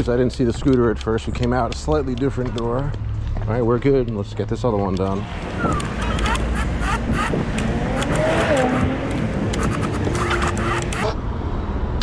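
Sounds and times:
road rumble: 0:00.0 - 0:12.0
wind rushing on microphone: 0:05.2 - 0:11.2.

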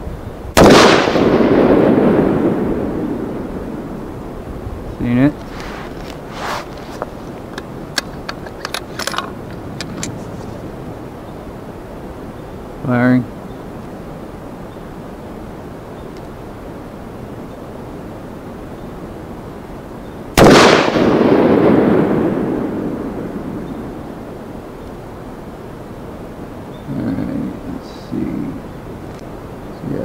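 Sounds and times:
rifle shot with echo: 0:00.5 - 0:04.1, 0:20.3 - 0:24.3.

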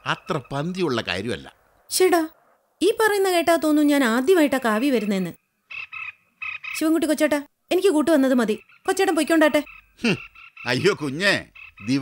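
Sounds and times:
frogs croaking: 0:00.0 - 0:02.6, 0:04.3 - 0:07.3, 0:08.2 - 0:12.0.

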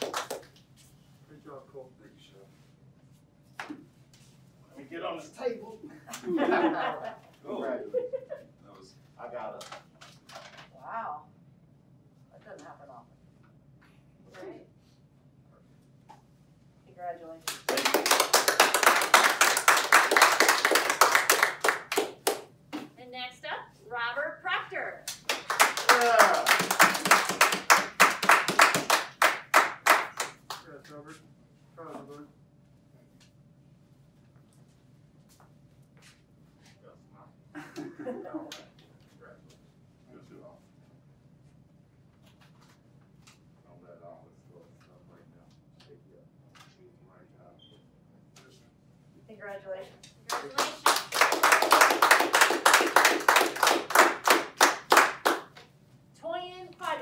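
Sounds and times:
people clapping in rhythm: 0:00.0 - 0:00.7, 0:17.4 - 0:22.9, 0:25.1 - 0:30.8, 0:50.3 - 0:55.6.

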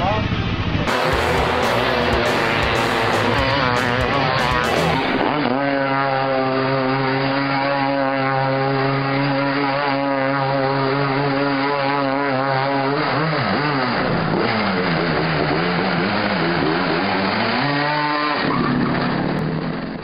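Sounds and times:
racing car engines revving: 0:00.0 - 0:20.0.

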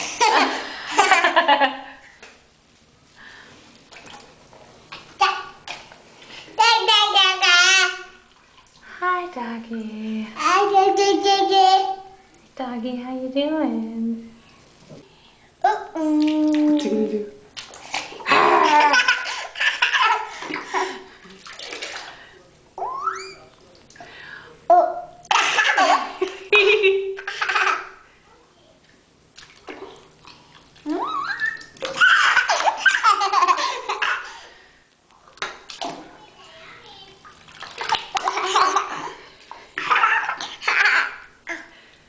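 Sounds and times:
water splashing in bathtub: 0:03.4 - 0:12.2, 0:15.8 - 0:24.2, 0:28.8 - 0:42.0.

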